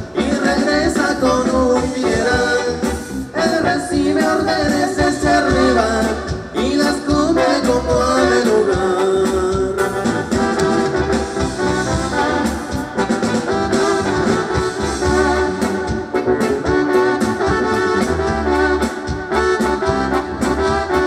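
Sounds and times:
electric guitars: 0.0s - 21.0s
keyboards: 0.0s - 21.0s
live band playing dance music: 0.0s - 21.0s
steady drum beat: 0.0s - 21.0s.

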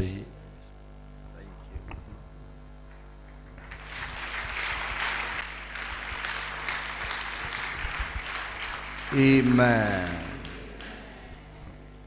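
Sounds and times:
crowd applauding: 3.4s - 12.0s.

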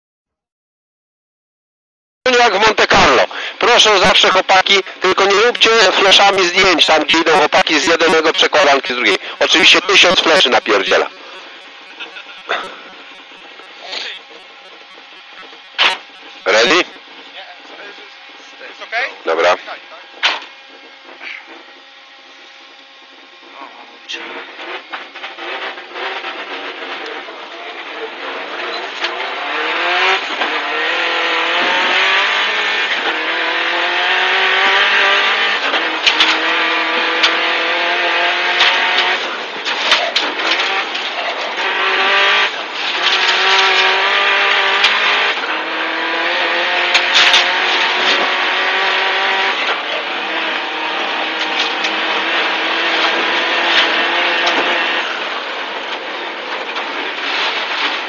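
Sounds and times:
rally car engine accelerating: 2.5s - 17.3s, 24.1s - 58.0s.

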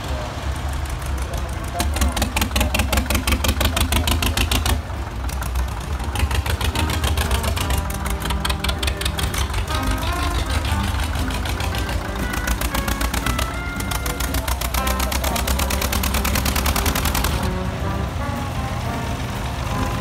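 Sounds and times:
tractor engines chugging: 0.0s - 20.0s
music melody: 5.7s - 20.0s.

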